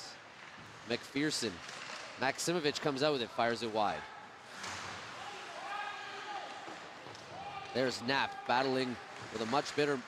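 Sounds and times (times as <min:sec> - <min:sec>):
skates and sticks scraping ice: 0:04.4 - 0:07.8, 0:08.6 - 0:10.0.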